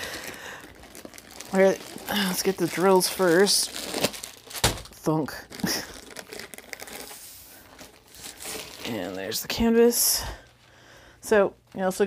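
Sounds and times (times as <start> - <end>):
packaging crinkling and rustling: 0.0 - 10.7.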